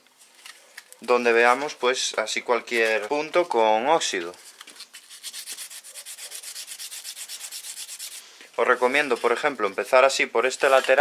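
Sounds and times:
foil rasping over chrome: 0:05.0 - 0:09.5.

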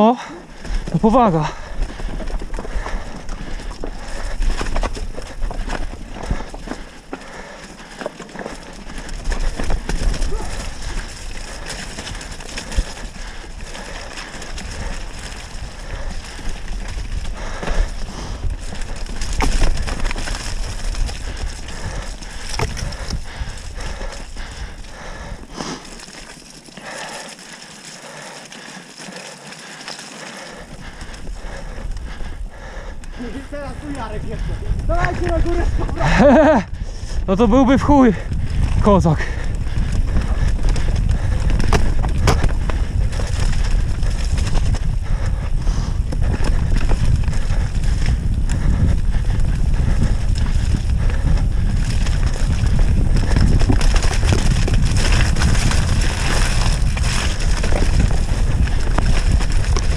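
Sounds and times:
bike rattling: 0:00.0 - 0:59.9
tyres rolling over stones: 0:00.5 - 0:32.4, 0:50.3 - 0:59.9.

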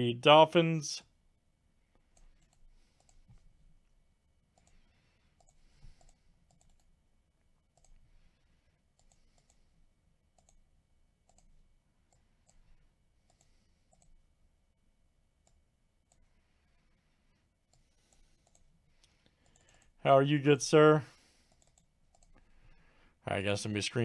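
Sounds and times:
computer mouse and keyboard clicks: 0:02.1 - 0:03.5, 0:04.5 - 0:07.0, 0:07.7 - 0:09.7, 0:10.3 - 0:10.6, 0:11.3 - 0:14.2, 0:17.7 - 0:20.0, 0:21.4 - 0:22.5.

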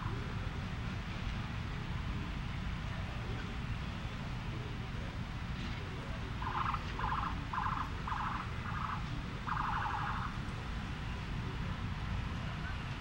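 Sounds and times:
car alarm pulsing tone: 0:06.4 - 0:10.3.

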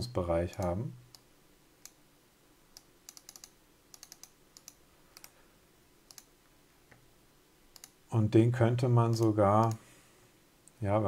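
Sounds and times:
computer clicks and taps: 0:02.8 - 0:05.4, 0:06.1 - 0:06.3, 0:07.7 - 0:08.0.

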